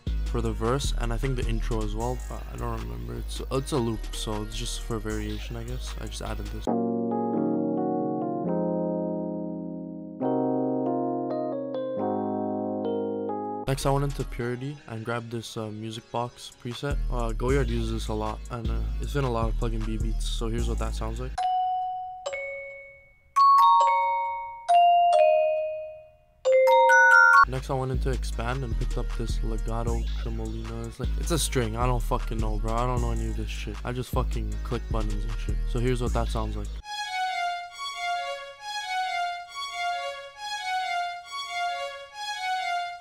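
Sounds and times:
tremolo strings looping melody: 6.7s - 13.7s, 26.5s - 27.5s, 36.8s - 43.0s
music box melody: 21.4s - 27.5s.

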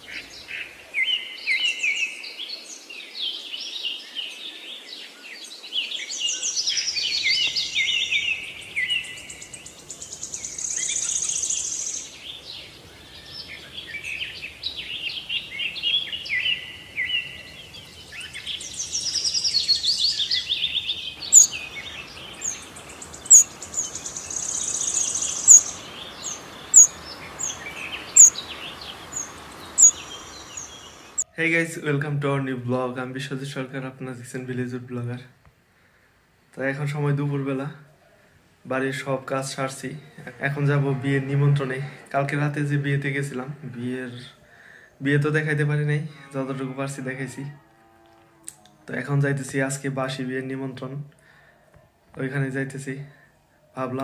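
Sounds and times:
birds singing and chirping: 0.0s - 31.2s
faint background hiss: 0.0s - 46.1s
sharp high bird chirp: 18.5s - 31.2s.

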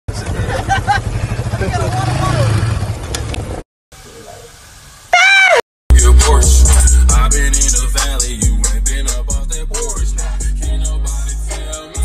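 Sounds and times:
quad bike engine rumbling: 0.1s - 3.6s.

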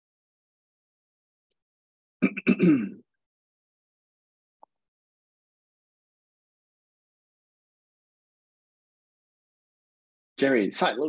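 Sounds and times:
man clearing his throat: 2.2s - 3.0s.

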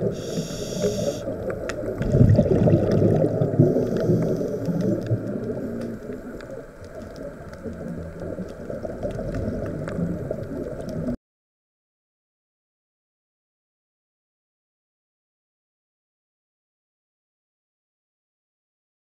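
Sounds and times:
underwater bubbles gurgling: 0.0s - 11.2s.

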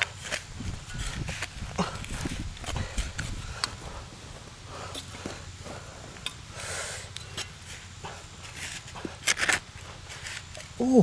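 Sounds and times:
trowel scraping stony soil: 0.0s - 3.4s, 7.3s - 10.8s.

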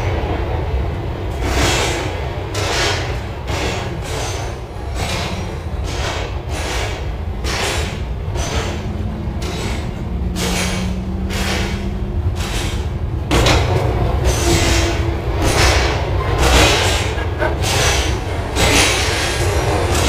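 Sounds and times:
bus interior rumble: 0.0s - 20.0s
knocks and rattles from bus body: 1.2s - 20.0s.

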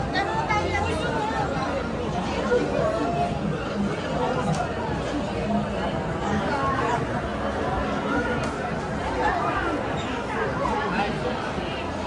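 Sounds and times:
crowd chatter indoors: 0.0s - 12.0s.

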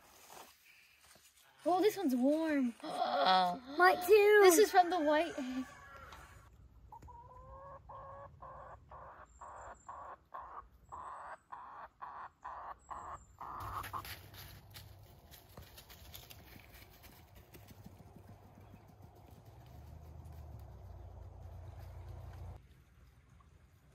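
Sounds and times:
hen calling: 2.8s - 14.1s
dry leaves crackling: 13.4s - 17.7s.

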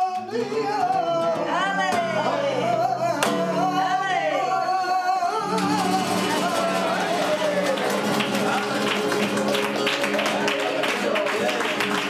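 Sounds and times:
flamenco guitar: 0.0s - 12.0s
hand clap: 5.5s - 12.0s.

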